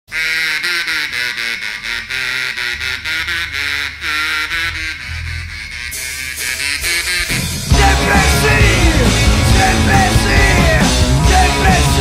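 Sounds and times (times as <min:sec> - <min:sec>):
bass line: 0:00.1 - 0:12.0
harmonica melody: 0:00.1 - 0:12.0.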